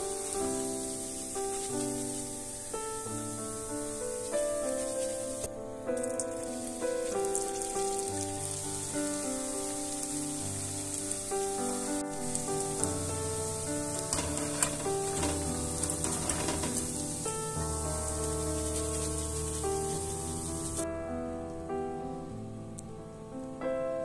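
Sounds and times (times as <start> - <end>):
small crackles: 0.0 - 20.8
oil sizzling: 0.0 - 20.9.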